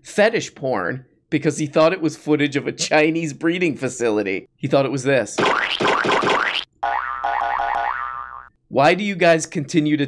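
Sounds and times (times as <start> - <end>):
cartoon boing sound effects: 5.4 - 8.5.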